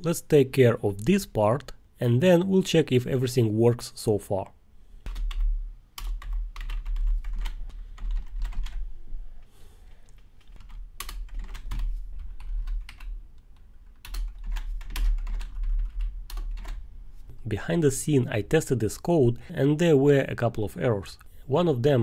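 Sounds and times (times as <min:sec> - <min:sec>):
computer keyboard typing: 0:05.0 - 0:08.8, 0:10.4 - 0:16.8.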